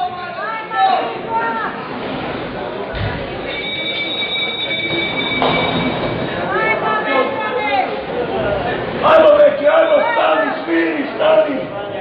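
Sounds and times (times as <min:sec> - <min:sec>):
busy bowling hall noise: 0:00.0 - 0:12.0
sharp knock: 0:03.0 - 0:03.4.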